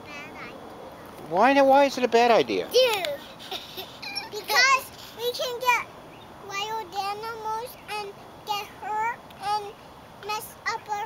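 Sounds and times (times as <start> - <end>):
girl singing wordless tune: 6.4 - 11.0.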